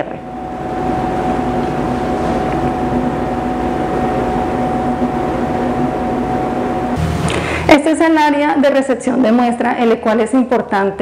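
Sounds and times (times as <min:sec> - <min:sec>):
constant even whine: 0:00.0 - 0:08.9
machine hum: 0:00.0 - 0:08.9.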